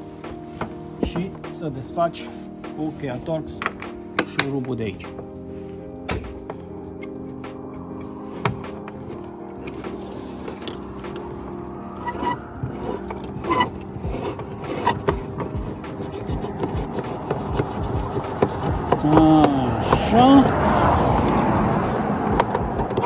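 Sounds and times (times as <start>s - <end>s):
soft background music: 0.0s - 23.0s
screwdriver scraping metal: 12.0s - 19.2s.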